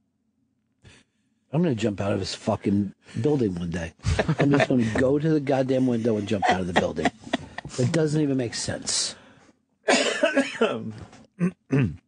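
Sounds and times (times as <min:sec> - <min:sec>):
man coughing: 0:09.9 - 0:12.0.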